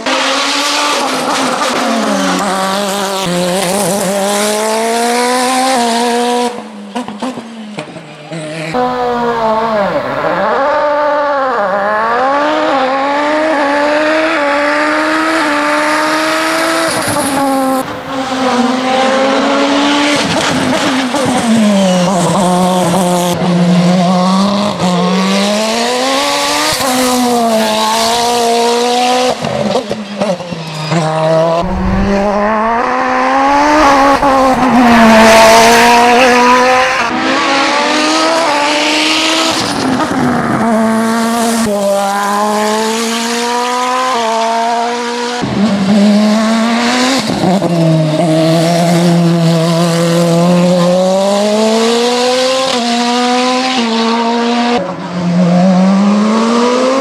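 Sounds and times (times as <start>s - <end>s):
race car engine revving: 31.3s - 47.6s.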